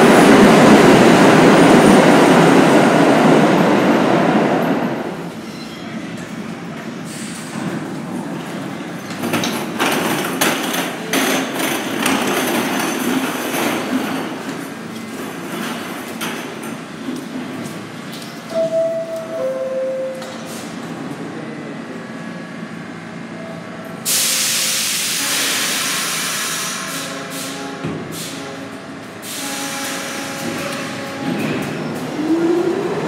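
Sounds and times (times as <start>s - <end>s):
subway car equipment running: 0.0s - 33.0s
air brakes hissing: 7.0s - 7.8s, 24.0s - 28.5s, 29.1s - 30.6s.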